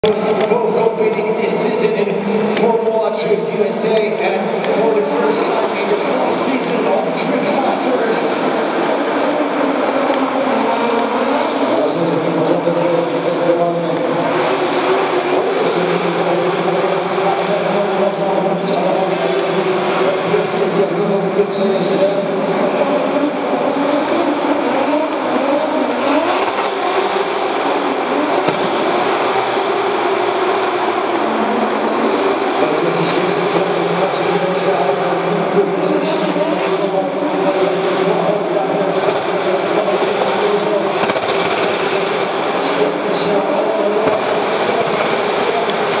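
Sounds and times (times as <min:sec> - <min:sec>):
car engine at high revs: 0:00.0 - 0:46.0.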